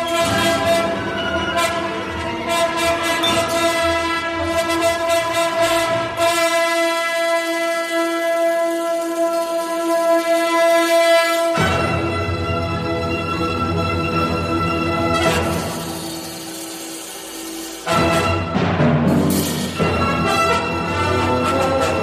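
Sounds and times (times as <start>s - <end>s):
held high orchestral note: 0.0s - 6.2s
low orchestral instruments: 0.0s - 22.0s
sharp percussive strokes: 15.2s - 20.8s.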